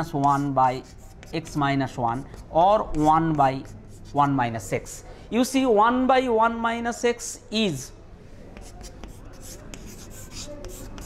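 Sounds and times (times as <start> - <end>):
chalk scratching on chalkboard: 0.0 - 5.0, 8.5 - 11.0.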